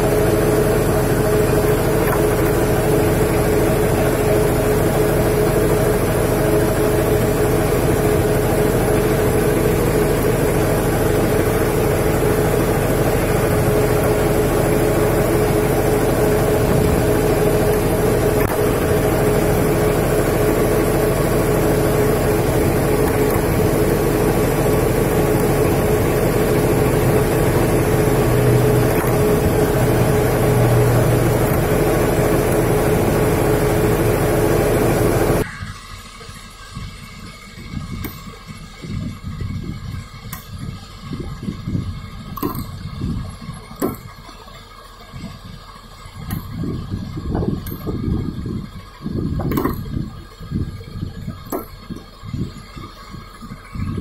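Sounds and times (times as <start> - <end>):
machinery droning: 0.0 - 54.0.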